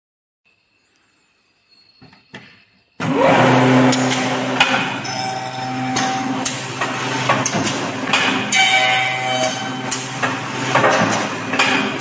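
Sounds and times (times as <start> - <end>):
electric motors whining and humming: 3.0 - 12.0.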